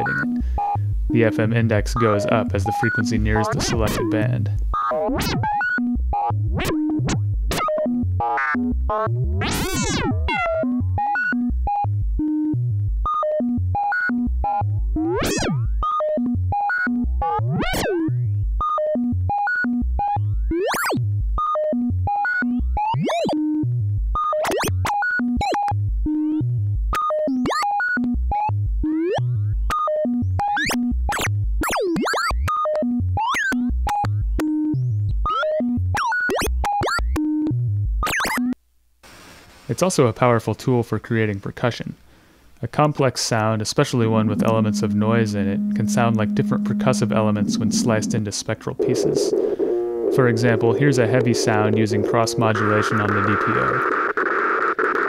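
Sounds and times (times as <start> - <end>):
swooping clangy synth tones: 43.7 - 53.2
synthesizer short pitched notes: 43.7 - 53.8.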